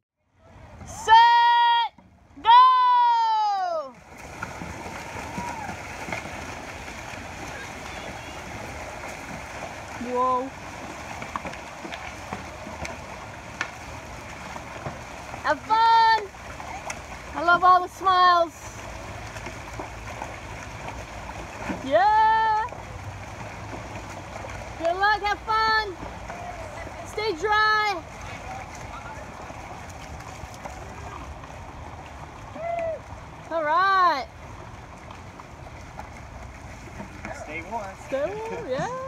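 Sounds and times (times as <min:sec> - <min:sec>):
paddles splashing through water: 0:00.4 - 0:39.0
people shouting and whooping: 0:00.9 - 0:04.0, 0:05.0 - 0:05.9, 0:32.5 - 0:33.2.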